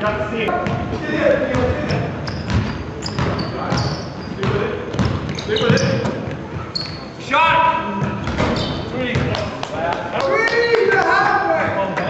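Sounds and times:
basketball bouncing on wooden floor: 1.5 - 6.4.

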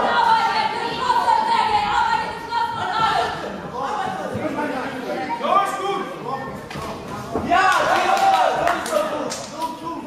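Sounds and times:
voices calling out in sports hall: 0.0 - 10.0.

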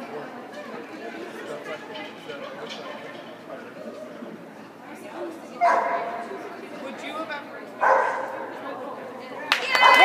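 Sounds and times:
dog barking: 5.6 - 6.1, 7.8 - 8.4.

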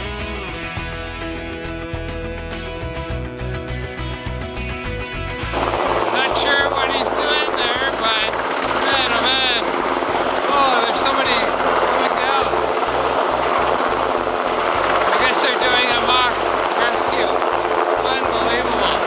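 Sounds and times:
helicopter hovering: 3.1 - 19.0.

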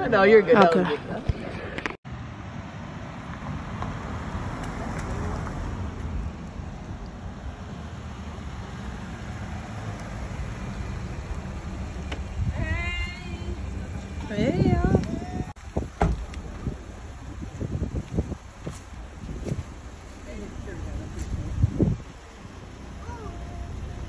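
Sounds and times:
car driving slowly: 1.6 - 24.0
wind on microphone: 11.3 - 20.1, 20.8 - 22.3.

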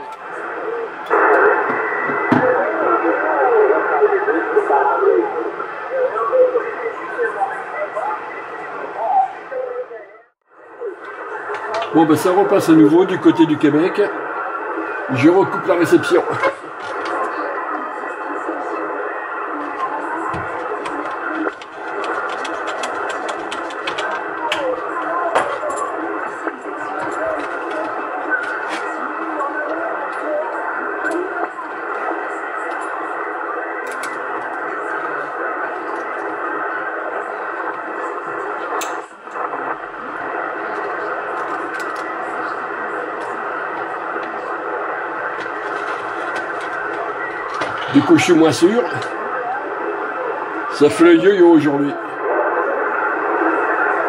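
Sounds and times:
faint distant radio voices: 0.0 - 54.0
radio static hiss: 0.0 - 54.0
crackling clicks: 20.6 - 33.0, 33.7 - 34.9, 38.6 - 47.9.

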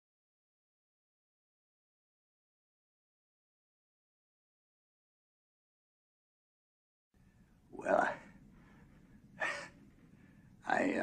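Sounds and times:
elderly man speaking: 7.7 - 8.4, 10.6 - 11.0.

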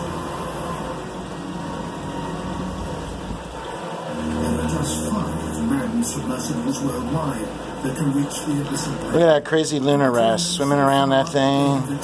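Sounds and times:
mechanical hum with hiss: 0.0 - 12.0.

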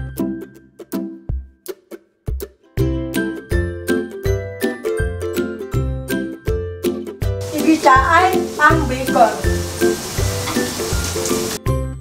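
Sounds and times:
background music: 0.0 - 12.0
onion sizzling in hot oil: 7.4 - 11.6.

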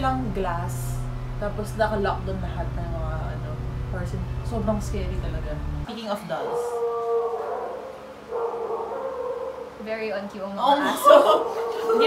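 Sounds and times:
drawn-out howl: 6.4 - 9.8.

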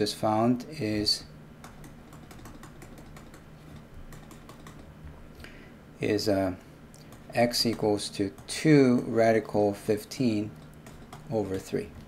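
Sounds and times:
low steady hum: 0.0 - 12.0
stylus tapping on tablet screen: 1.6 - 4.9, 7.0 - 9.1, 10.7 - 11.3.

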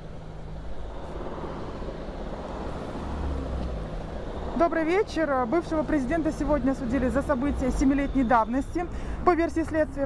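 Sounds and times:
motor vehicle passing: 0.0 - 10.0.

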